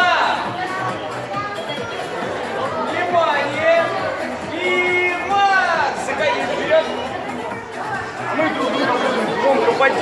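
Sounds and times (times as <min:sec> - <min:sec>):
chatter of voices: 0:00.0 - 0:10.0
music: 0:00.0 - 0:10.0
children's voices: 0:00.4 - 0:05.3, 0:05.9 - 0:10.0.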